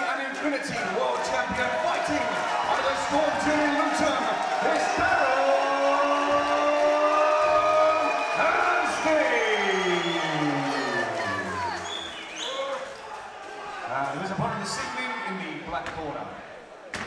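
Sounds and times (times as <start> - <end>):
crowd cheering: 0.0 - 15.7.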